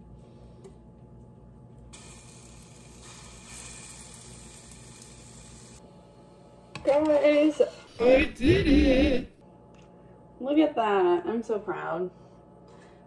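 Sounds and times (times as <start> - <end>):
batter sizzling in frying pan: 1.9 - 5.8.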